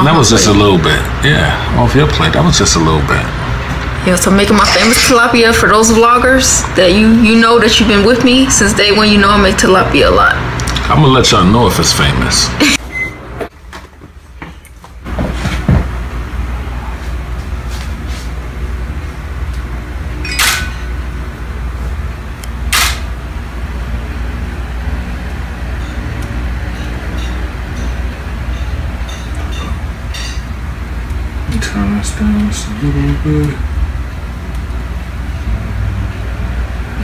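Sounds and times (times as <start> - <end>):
low room hum: 0.0 - 37.0.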